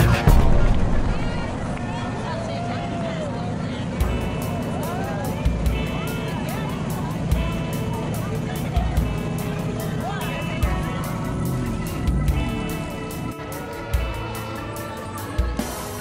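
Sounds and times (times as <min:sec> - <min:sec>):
crowd voices: 0:00.0 - 0:16.0
music: 0:00.0 - 0:16.0.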